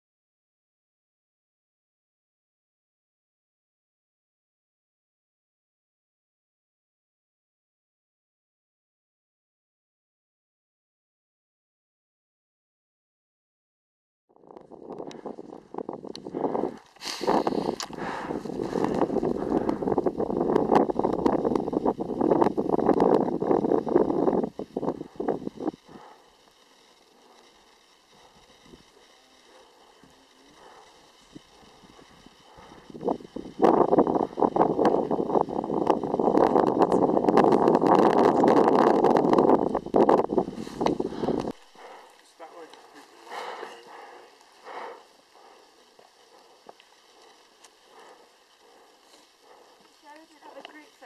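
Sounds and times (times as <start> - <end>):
people talking: 28.7 - 32.1, 36.4 - 38.9, 42.2 - 44.4, 50.0 - 51.0.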